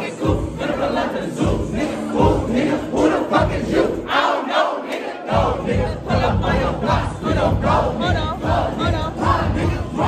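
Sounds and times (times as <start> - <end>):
loud dance music: 0.0 - 4.3, 5.3 - 10.0
party crowd shouting and chanting: 0.0 - 10.0.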